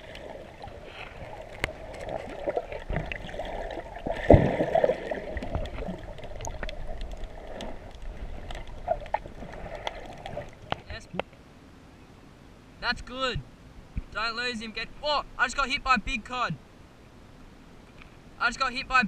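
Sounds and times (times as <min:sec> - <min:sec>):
water moving underwater: 0:00.0 - 0:10.9.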